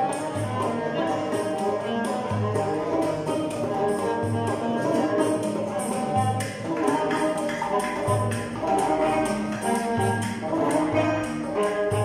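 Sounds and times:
banjo melody: 0.0s - 12.0s
hand percussion beat: 0.0s - 12.0s
oud melody: 0.0s - 12.0s.

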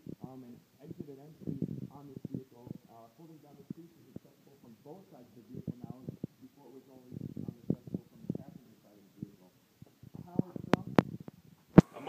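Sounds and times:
muffled talking: 0.2s - 9.5s, 10.1s - 11.2s.

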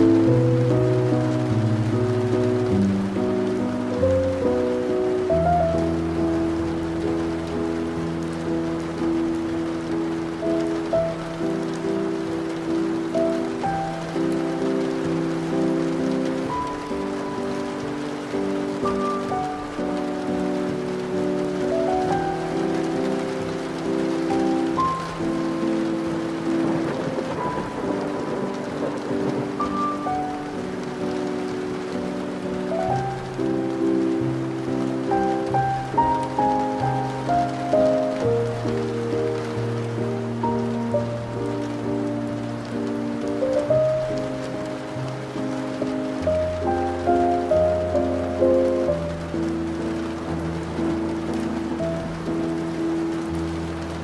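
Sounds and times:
slow classical music: 0.0s - 54.0s
steady rain: 0.0s - 54.0s
thunder: 22.0s - 32.2s.

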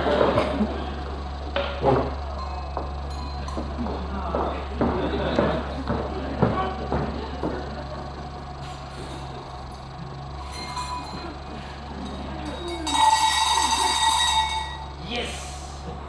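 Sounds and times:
bell ringing: 2.3s - 3.8s, 10.3s - 11.5s, 12.1s - 15.0s.

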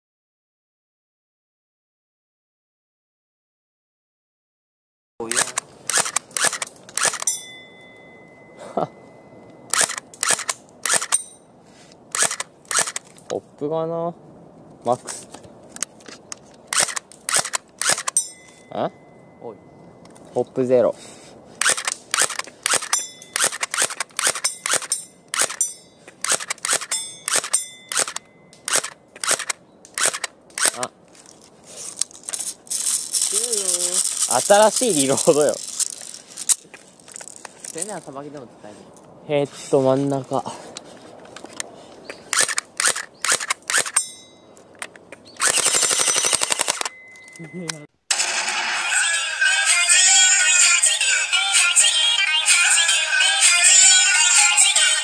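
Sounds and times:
handling rustle: 21.6s - 44.0s.

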